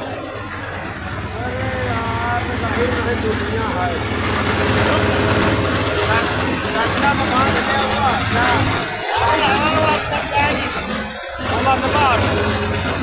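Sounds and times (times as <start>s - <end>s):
milling machine droning: 0.0s - 13.0s
rice pouring from chute: 0.0s - 13.0s.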